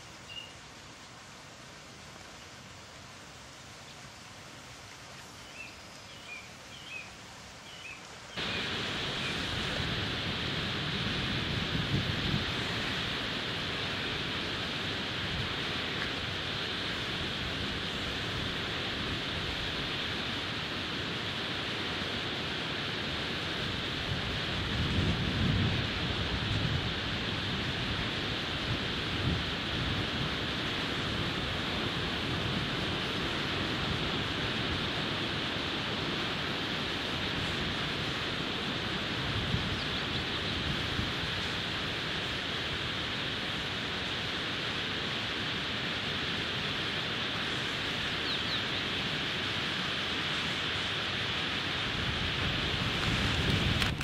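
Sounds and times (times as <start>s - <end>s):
river water flowing: 0.0s - 25.1s, 25.8s - 54.0s.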